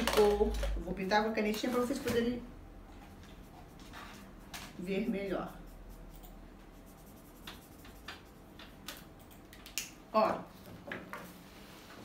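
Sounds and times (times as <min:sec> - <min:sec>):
felt-tip pen scratching on paper: 0:03.4 - 0:08.4.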